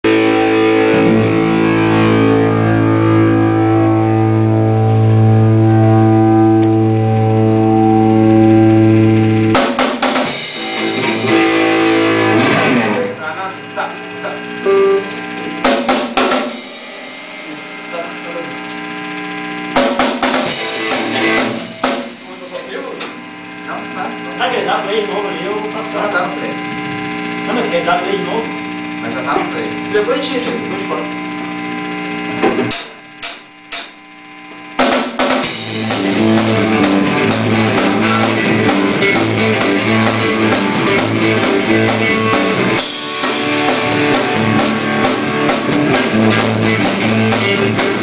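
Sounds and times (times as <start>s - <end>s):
electric guitar and bass chord: 0.0s - 48.0s
drum hits: 9.4s - 12.8s, 15.6s - 18.1s, 19.7s - 23.2s, 32.4s - 34.0s, 34.8s - 48.0s
ringing cymbal: 16.5s - 18.4s.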